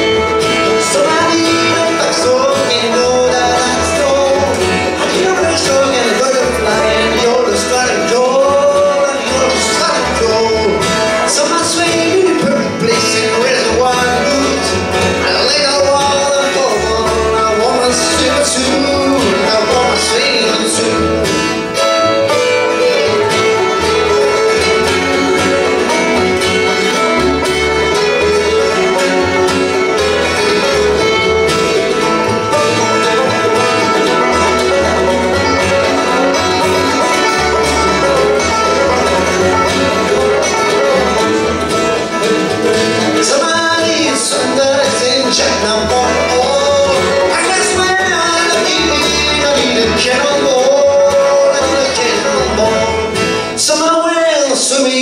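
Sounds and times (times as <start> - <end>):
fiddle: 0.0 - 54.9
acoustic guitar: 0.0 - 55.0
banjo: 0.0 - 55.0
mandolin: 0.0 - 55.0
upright bass: 0.0 - 55.0.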